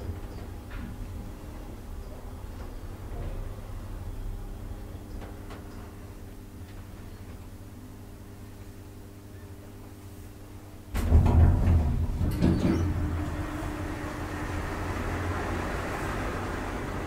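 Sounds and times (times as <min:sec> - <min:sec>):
elevator pump motor humming: 0:00.0 - 0:17.0
elevator doors clattering shut: 0:10.9 - 0:17.0.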